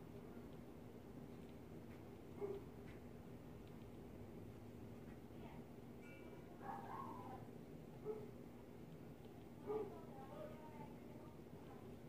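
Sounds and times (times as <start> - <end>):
low room hum: 0.0 - 12.0
faint distant voices: 9.4 - 12.0.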